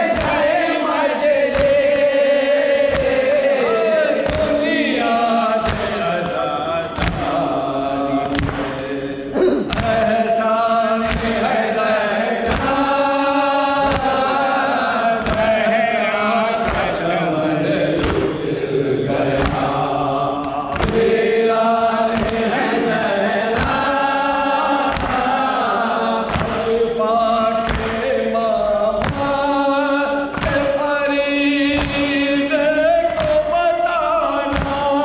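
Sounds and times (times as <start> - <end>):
men chanting a lament: 0.0 - 35.0
chest-beating in unison: 6.9 - 10.2.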